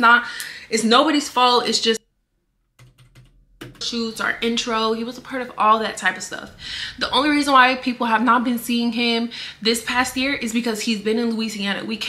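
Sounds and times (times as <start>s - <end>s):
woman speaking: 0.0s - 2.0s, 3.8s - 12.0s.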